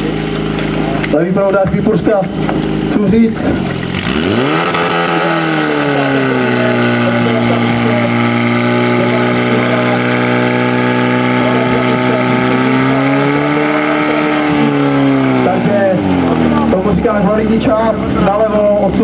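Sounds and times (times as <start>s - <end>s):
fire pump engine revving: 0.0s - 19.0s.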